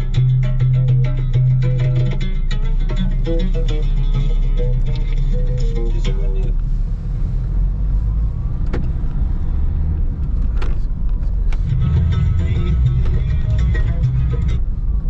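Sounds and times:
guitar music: 0.0s - 6.8s, 11.4s - 15.0s
car road and engine rumble: 0.0s - 15.0s.

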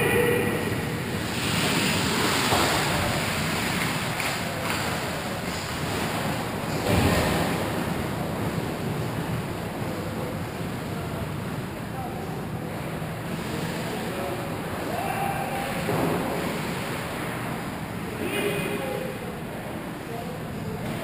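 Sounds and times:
skates rushing on ice: 1.2s - 7.0s.

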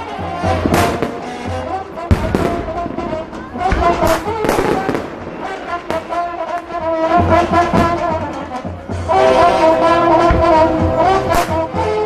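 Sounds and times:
fireworks bangs: 0.0s - 12.0s
music playing: 0.0s - 12.0s.

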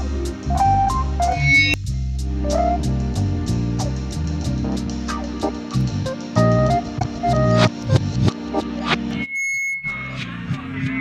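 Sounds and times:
steady bass: 0.0s - 9.3s
melodic sample: 6.1s - 9.3s.

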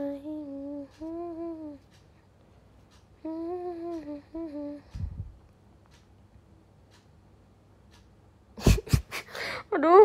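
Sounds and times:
woman humming: 0.0s - 1.9s, 3.2s - 5.3s.

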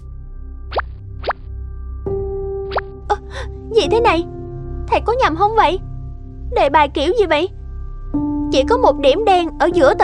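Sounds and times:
soft cartoon music: 0.0s - 10.0s
plop sound effects falling pitch: 2.7s - 2.9s.

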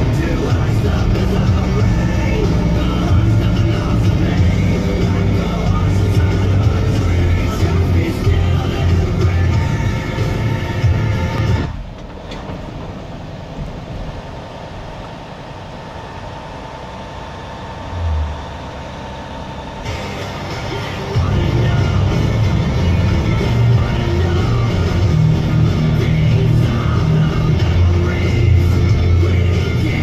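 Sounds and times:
music: 0.0s - 11.8s, 19.8s - 30.0s
steady rumbling noise: 0.0s - 30.0s.

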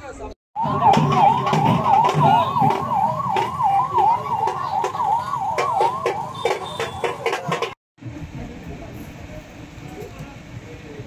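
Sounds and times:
yelping siren-like tone: 0.6s - 7.3s.

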